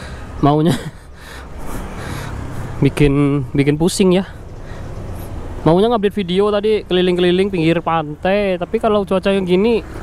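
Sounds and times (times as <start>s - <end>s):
traffic on a wet street: 0.0s - 10.0s.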